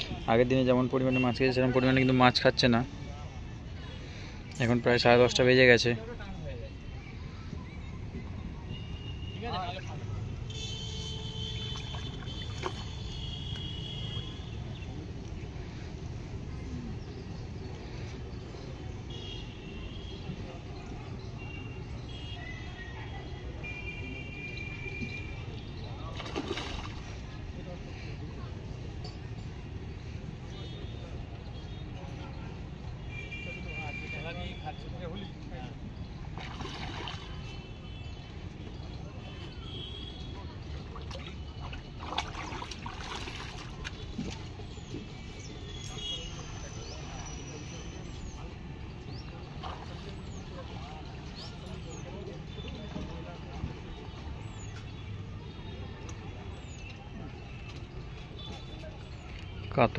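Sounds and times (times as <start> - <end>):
splash in water: 11.4 - 13.4, 26.1 - 27.4, 36.3 - 37.7, 40.8 - 44.9, 49.4 - 51.1
faint voices: 14.1 - 59.9
distant traffic rumble: 24.8 - 59.9.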